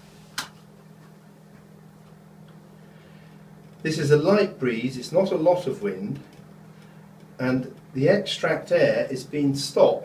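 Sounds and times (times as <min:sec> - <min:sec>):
ventilation fan humming: 0:00.0 - 0:10.0.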